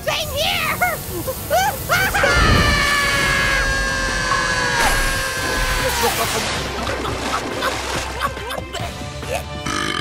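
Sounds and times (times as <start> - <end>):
cartoon voices screaming: 1.5 - 6.3.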